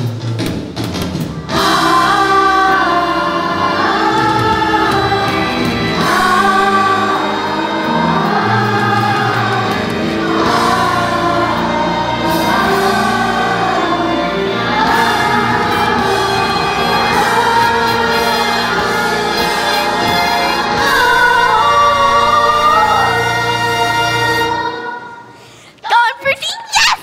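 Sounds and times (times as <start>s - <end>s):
instrumental accompaniment: 0.0s - 25.4s
children singing in chorus: 1.4s - 25.4s.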